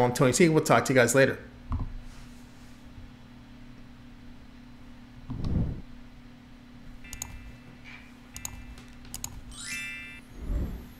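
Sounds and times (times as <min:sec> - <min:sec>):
rising swish: 0:05.3 - 0:05.9
double mouse clicks: 0:07.1 - 0:07.4, 0:08.4 - 0:09.4
ringing chime: 0:09.5 - 0:10.4.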